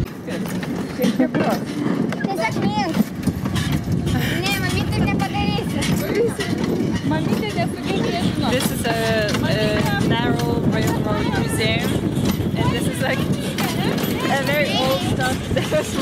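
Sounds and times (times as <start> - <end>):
handcar wheels rattling on rails: 0.0 - 16.0
people talking: 0.2 - 3.1, 4.0 - 16.0.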